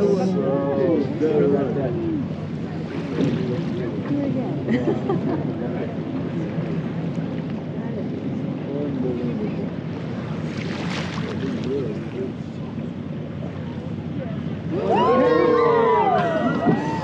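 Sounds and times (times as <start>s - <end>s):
passenger voices: 0.0s - 10.6s
boat engine rumble: 0.0s - 17.0s.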